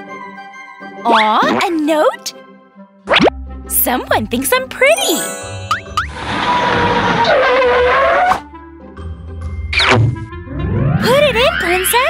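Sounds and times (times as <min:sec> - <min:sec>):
background music: 0:00.0 - 0:06.7.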